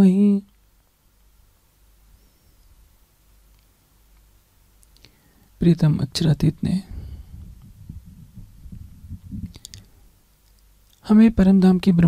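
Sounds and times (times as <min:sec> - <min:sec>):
person speaking: 0:05.6 - 0:07.3, 0:11.0 - 0:12.0
low thumps near microphone: 0:06.8 - 0:10.0.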